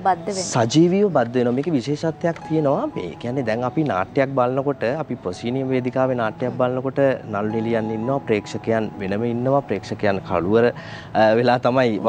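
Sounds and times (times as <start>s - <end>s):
man talking: 0.5s - 12.0s.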